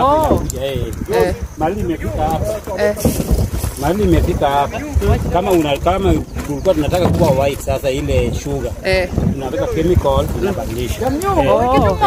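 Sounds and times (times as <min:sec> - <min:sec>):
people talking: 0:00.0 - 0:12.0
wind buffeting microphone: 0:00.0 - 0:12.0.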